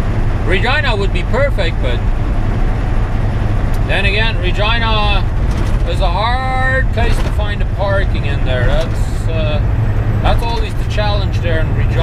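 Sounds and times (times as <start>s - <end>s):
road noise: 0.0s - 12.0s
truck engine droning: 0.0s - 12.0s.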